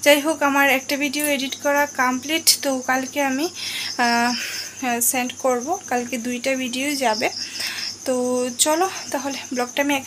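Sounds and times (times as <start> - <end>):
cricket chirping: 0.0 - 10.0
woman talking: 0.0 - 10.0.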